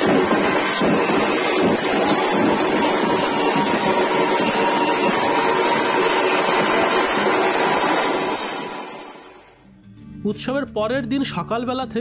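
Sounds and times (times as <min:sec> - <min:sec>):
large drums: 0:00.0 - 0:09.2.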